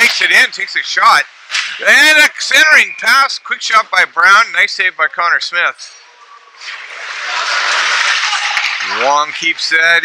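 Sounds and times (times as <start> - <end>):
crowd applauding: 6.8 - 9.6.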